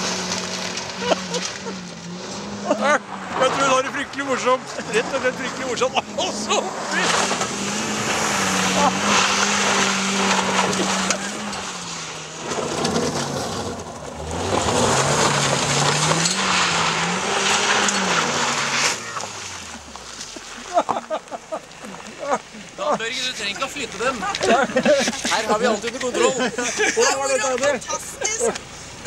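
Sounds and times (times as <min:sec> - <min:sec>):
car engine revving hard: 0:00.0 - 0:21.2
tyres churning and spraying stones: 0:00.0 - 0:29.0.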